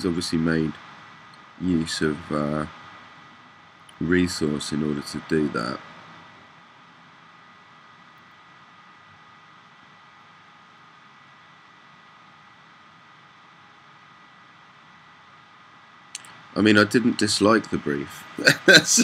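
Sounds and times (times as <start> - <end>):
thin high whine: 0.0 - 3.4, 16.2 - 19.0
microphone hiss: 0.0 - 19.0.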